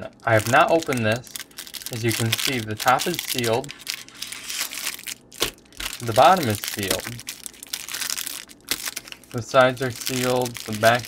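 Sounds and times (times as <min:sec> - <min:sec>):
plastic wrapper crinkling: 0:00.2 - 0:11.0.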